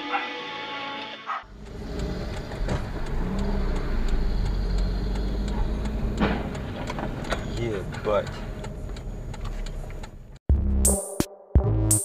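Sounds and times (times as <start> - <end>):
background music: 0.0 - 1.5, 10.5 - 12.0
car engine and road rumble: 1.4 - 10.4.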